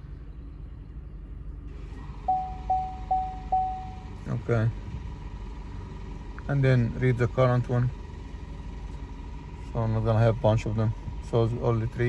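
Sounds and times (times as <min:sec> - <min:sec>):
short electronic beeps: 0:02.2 - 0:04.2.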